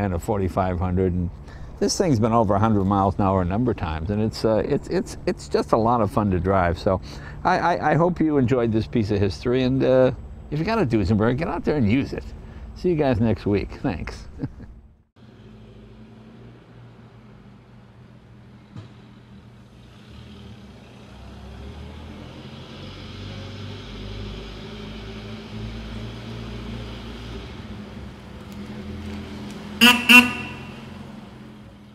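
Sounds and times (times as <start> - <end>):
car horn toots: 29.8 - 31.2.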